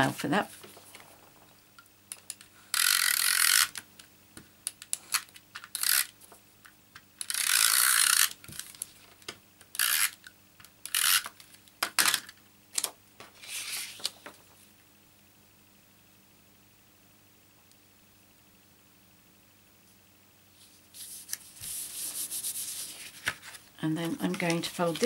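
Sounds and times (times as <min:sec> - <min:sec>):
tape runner rasping on card: 0:02.7 - 0:03.8, 0:07.2 - 0:08.8, 0:09.8 - 0:10.2.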